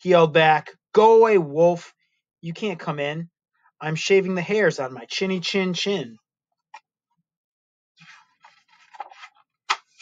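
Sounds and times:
book page turning: 8.0s - 10.0s.

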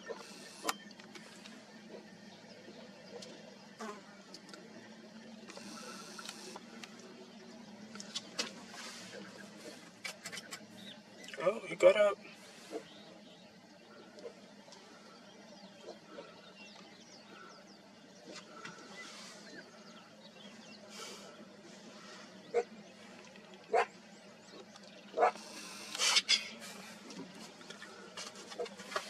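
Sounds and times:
cheetah cubs spitting: 24.5s - 29.0s
cheetah cub hissing: 25.2s - 27.1s.

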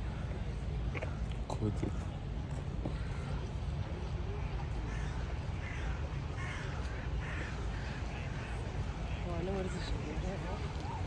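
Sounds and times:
crow cawing: 4.9s - 8.6s.

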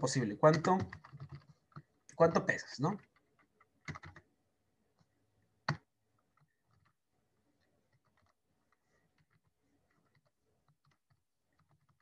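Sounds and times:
computer keyboard clicks: 0.4s - 4.2s.

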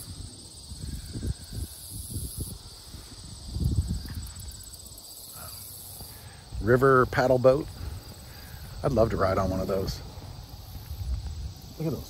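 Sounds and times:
crickets trilling: 0.0s - 12.0s
wind rumble on microphone: 0.0s - 12.0s.

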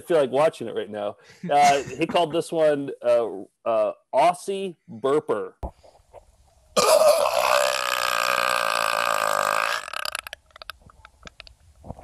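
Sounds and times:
man belching loudly: 6.8s - 10.4s.

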